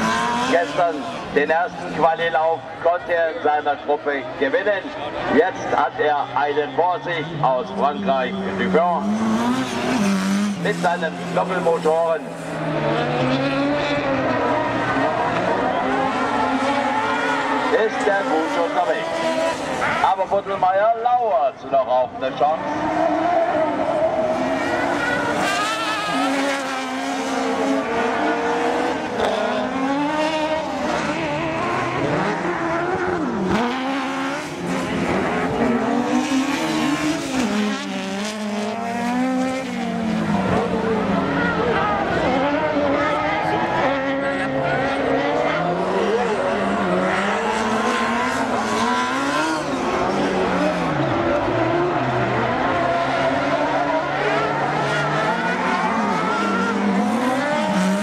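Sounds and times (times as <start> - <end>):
racing buggy engines revving: 0.0 - 58.0.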